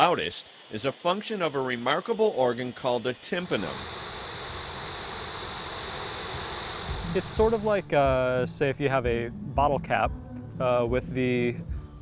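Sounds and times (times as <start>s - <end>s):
cicada buzzing drone: 0.0s - 8.2s.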